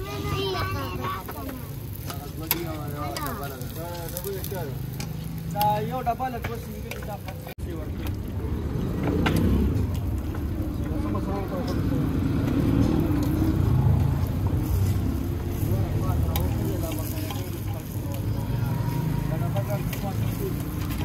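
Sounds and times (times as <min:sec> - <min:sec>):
vehicle engine rumbling: 0:00.0 - 0:21.0
voices: 0:00.0 - 0:21.0.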